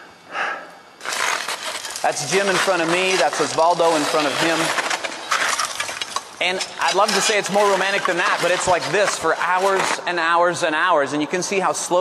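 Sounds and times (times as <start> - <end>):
person breathing hard: 0.3 - 0.9
footsteps crunching on snow: 1.0 - 10.2.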